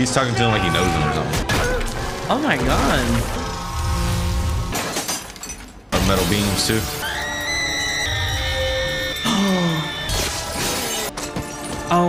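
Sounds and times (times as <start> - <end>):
dramatic film music: 0.0 - 4.8, 5.9 - 12.0
crashing and shattering effects: 1.3 - 7.4, 8.2 - 11.8.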